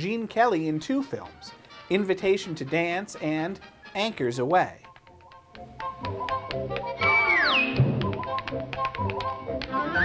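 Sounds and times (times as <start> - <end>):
tap shoes on stage floor: 4.8 - 10.0.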